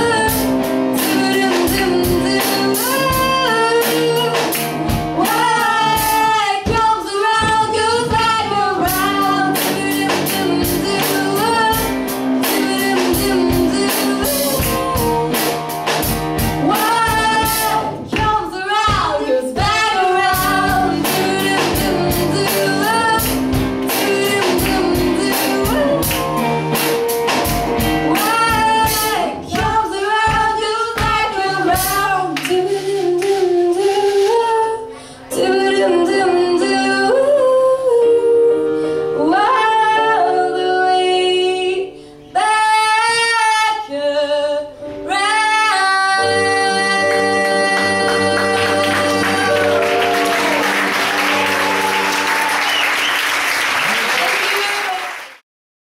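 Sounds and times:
drum hits: 0:00.3 - 0:32.1
woman singing long notes: 0:16.6 - 0:26.1, 0:28.1 - 0:50.7
audience applauding: 0:47.8 - 0:55.4.

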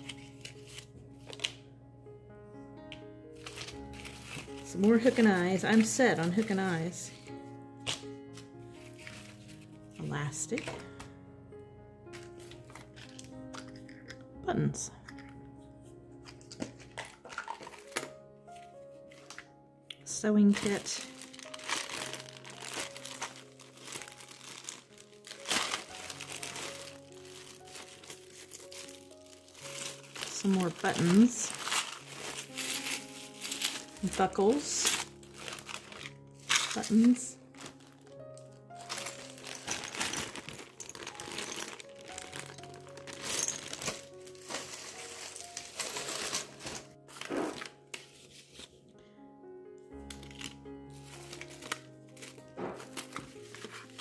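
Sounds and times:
plastic bags crinkling: 0:00.0 - 0:01.6, 0:03.4 - 0:11.1, 0:12.1 - 0:14.2, 0:16.2 - 0:48.7, 0:49.9 - 0:54.0
plastic packaging rustling: 0:00.0 - 0:01.6, 0:03.4 - 0:11.2, 0:12.1 - 0:14.0, 0:16.2 - 0:48.9, 0:49.9 - 0:54.0
soft background music: 0:00.0 - 0:54.0.

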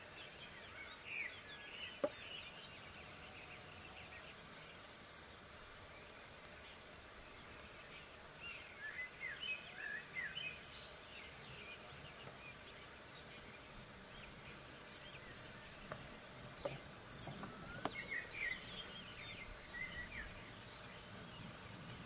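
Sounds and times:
insects trilling: 0:00.0 - 0:22.0
bird chirps: 0:14.1 - 0:20.6.

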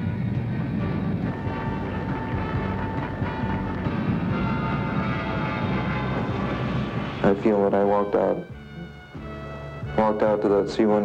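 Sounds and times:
jet engines whining and rumbling: 0:00.0 - 0:09.3.

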